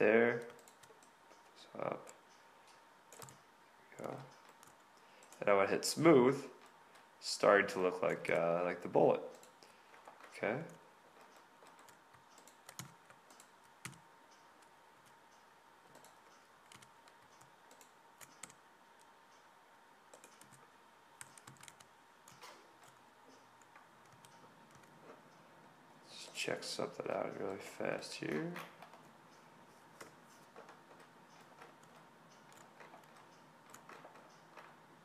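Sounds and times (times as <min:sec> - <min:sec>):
faint steady hum: 0:00.0 - 0:35.0
keyboard and mouse clicks: 0:00.3 - 0:05.4, 0:09.3 - 0:19.4, 0:20.1 - 0:25.0, 0:30.0 - 0:34.8.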